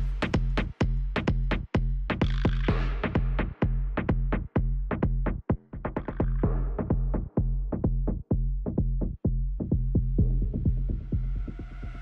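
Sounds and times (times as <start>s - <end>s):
electronic dance music: 0.0s - 4.2s
low bass: 0.0s - 12.0s.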